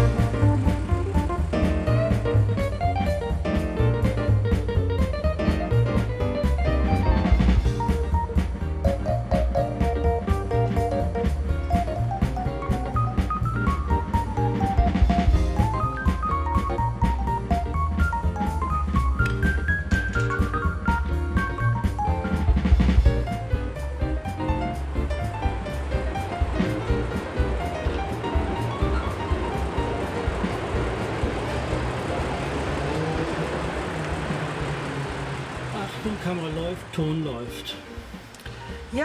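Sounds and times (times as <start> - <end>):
background music with drum beat: 0.0 - 32.6
train rumbling over viaduct: 0.0 - 39.0.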